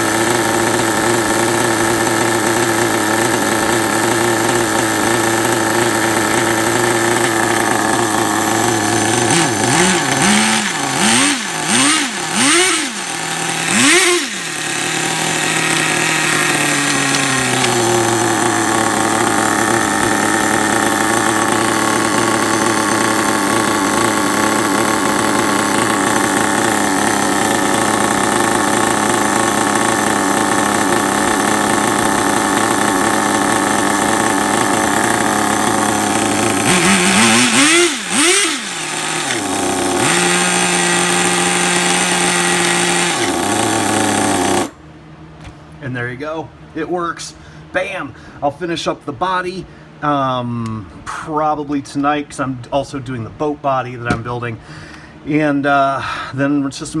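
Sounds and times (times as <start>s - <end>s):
small engine revving and idling: 0.0s - 44.9s.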